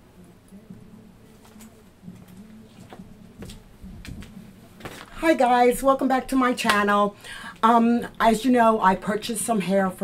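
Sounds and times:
person sitting in vinyl chair: 0.5s - 7.8s.

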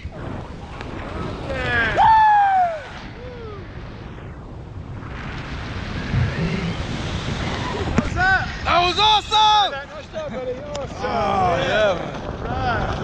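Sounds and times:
wind on microphone: 0.0s - 13.0s
man whooping: 1.9s - 3.6s.

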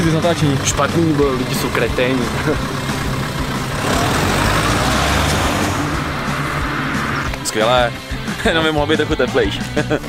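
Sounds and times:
cars driving past: 0.2s - 8.3s
tyre noise on asphalt: 0.6s - 7.6s.

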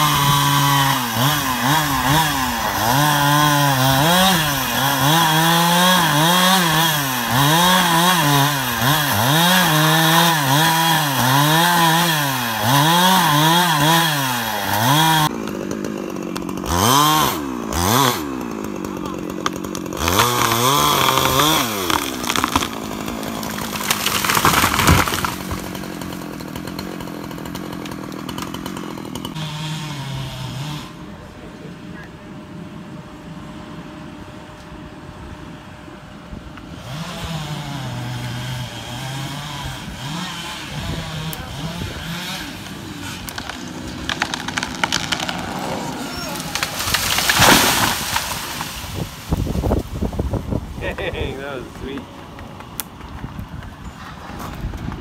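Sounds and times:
chainsaw cutting wood: 0.0s - 31.1s, 36.6s - 55.0s.

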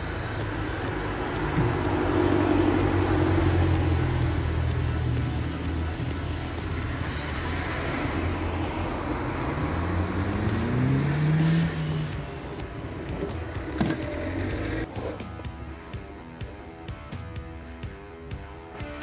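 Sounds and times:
car engine running: 0.0s - 14.9s
rock music with guitar: 0.0s - 19.0s.

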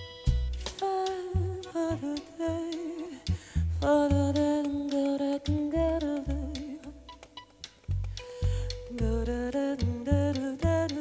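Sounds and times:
live band melody: 0.0s - 3.2s
deep electric bass: 0.0s - 4.9s, 5.5s - 7.2s, 7.8s - 11.0s.

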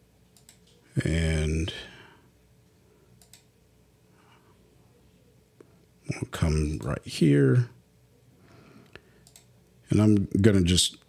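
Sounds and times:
computer mouse click: 0.4s - 0.8s, 3.2s - 3.5s, 8.8s - 9.5s
person speaking: 0.6s - 2.2s, 4.7s - 7.8s, 9.8s - 11.0s.

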